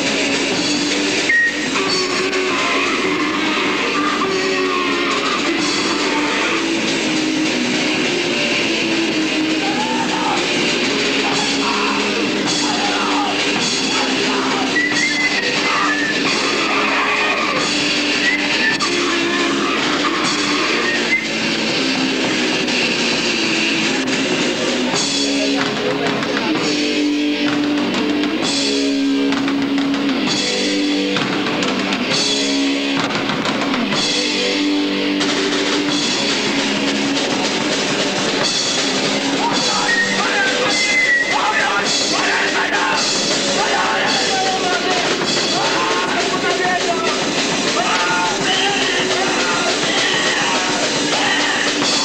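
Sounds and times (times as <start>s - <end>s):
heavy rock band playing live: 0.0s - 52.0s.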